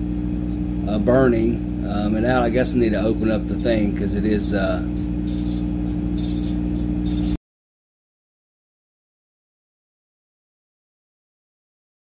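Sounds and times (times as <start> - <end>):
laser engraver humming and hissing: 0.0 - 7.4.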